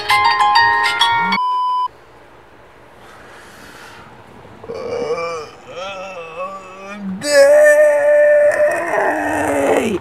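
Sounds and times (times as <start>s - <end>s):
high-pitched beep: 1.3s - 1.9s
low steady hiss: 1.4s - 8.5s.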